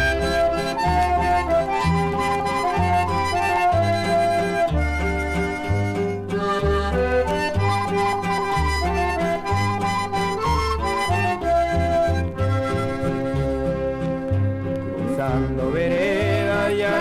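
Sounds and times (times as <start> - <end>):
instrumental folk music from vinyl: 0.0 - 17.0.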